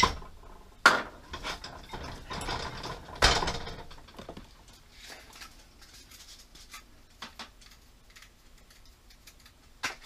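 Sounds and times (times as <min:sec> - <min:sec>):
kitchenware clattering: 0:00.0 - 0:04.5.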